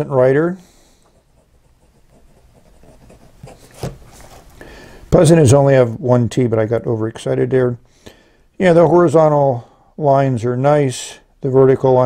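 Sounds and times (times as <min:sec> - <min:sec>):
pen nib scratching on paper: 0:01.0 - 0:04.0.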